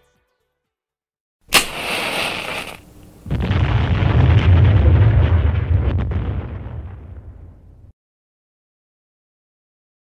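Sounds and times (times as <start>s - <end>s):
deep rumbling explosion: 1.7s - 7.9s.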